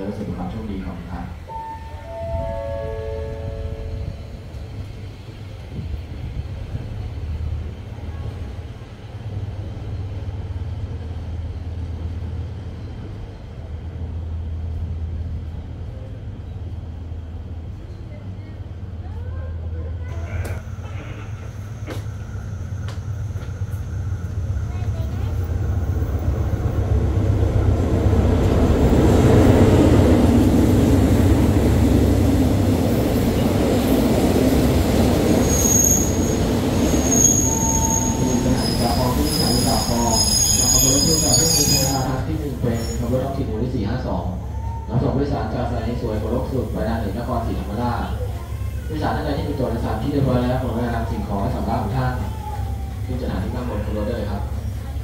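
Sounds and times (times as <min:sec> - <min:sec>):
diesel train engine rumble: 0:00.0 - 0:55.0
train brake and wheel squeals: 0:20.1 - 0:25.7, 0:35.2 - 0:43.4.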